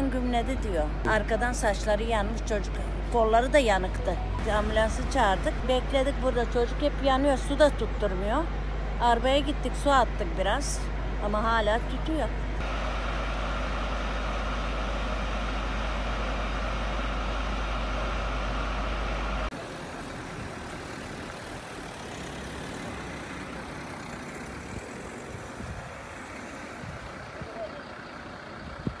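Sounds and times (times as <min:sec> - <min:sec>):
diesel engine rumbling: 0:00.0 - 0:29.0.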